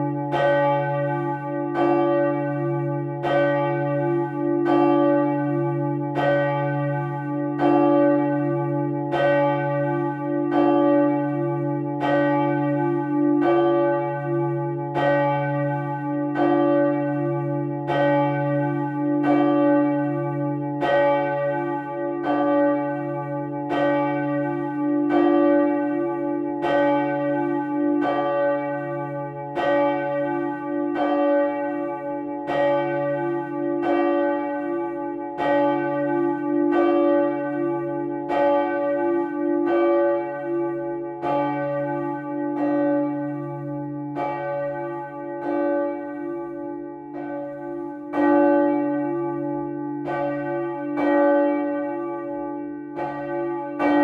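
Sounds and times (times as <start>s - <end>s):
swinging church bell ringing: 0.0s - 54.0s.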